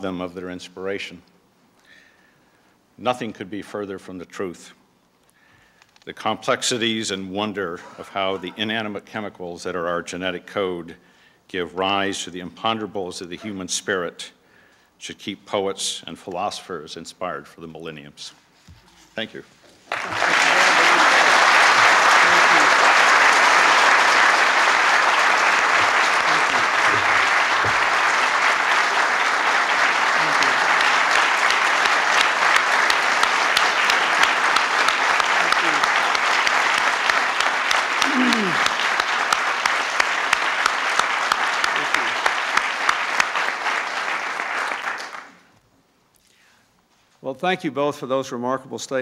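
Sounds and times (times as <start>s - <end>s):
audience applauding: 19.9s - 45.4s.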